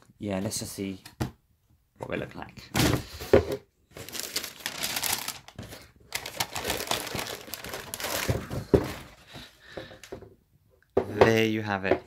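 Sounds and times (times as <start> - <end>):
tissue paper crinkling and rustling: 3.9 - 9.2.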